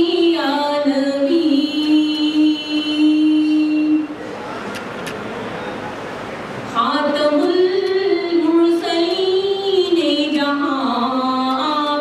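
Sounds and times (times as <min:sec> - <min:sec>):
woman singing a long note: 0:00.0 - 0:04.1.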